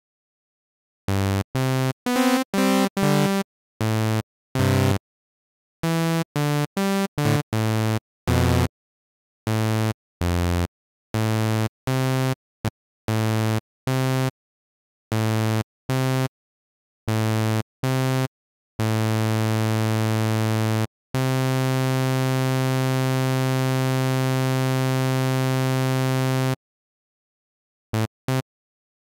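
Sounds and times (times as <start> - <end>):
buzzy synthesizer notes: 2.1 - 3.4.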